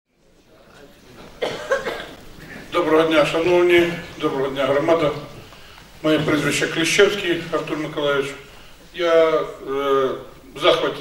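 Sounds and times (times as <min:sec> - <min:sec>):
faint room noise: 0:00.1 - 0:11.0
man coughing into microphone: 0:01.4 - 0:02.7.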